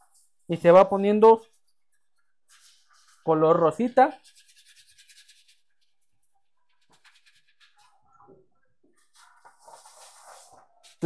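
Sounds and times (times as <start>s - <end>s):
gritty scrubbing in metal pot: 4.1s - 6.0s.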